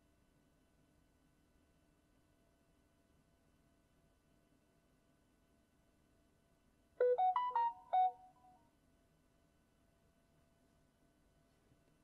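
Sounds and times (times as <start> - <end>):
smartphone notification chime: 7.0 - 8.2.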